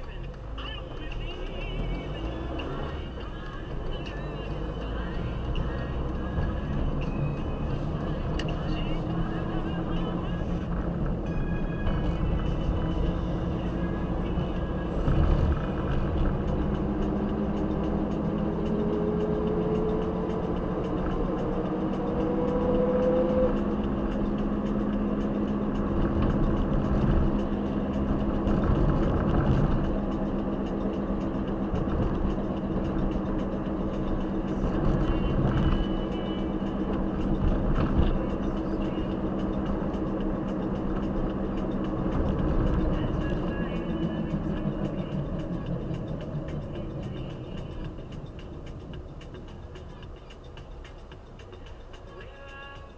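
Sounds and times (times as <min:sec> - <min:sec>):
car engine and road hum: 0:00.0 - 0:52.9
rising engine tone: 0:10.7 - 0:49.8.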